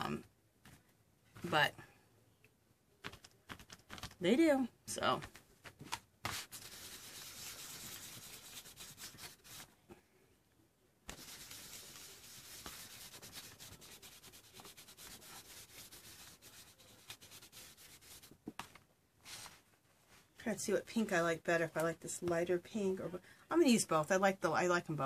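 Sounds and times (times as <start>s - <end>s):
wipe rubbing on paper: 6.3s - 9.7s, 11.1s - 18.3s.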